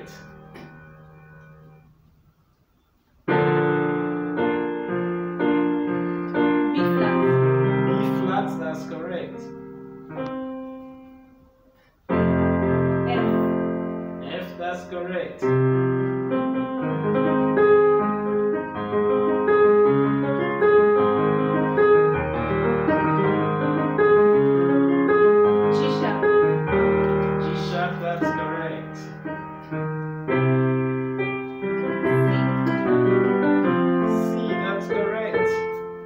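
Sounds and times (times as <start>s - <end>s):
electronic keyboard piano chords: 0.0s - 2.2s, 3.2s - 36.0s.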